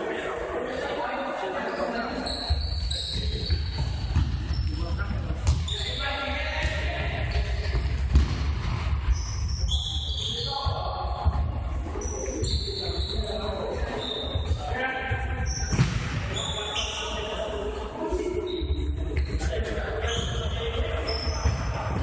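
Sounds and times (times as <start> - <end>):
sneakers squeaking on floor: 1.7 - 7.9, 9.0 - 11.4, 12.0 - 22.0
ball kicked and bouncing: 3.3 - 5.7, 6.6 - 9.0, 15.1 - 16.3.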